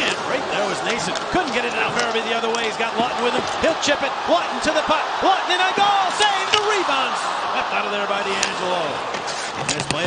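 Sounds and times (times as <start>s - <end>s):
arena crowd voices: 0.0s - 10.0s
sticks and puck clicking on ice: 0.8s - 2.7s.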